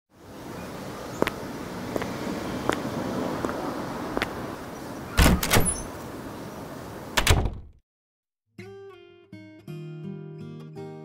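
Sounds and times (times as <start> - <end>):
door opening and shutting clunks: 5.2 - 6.0, 7.2 - 7.8.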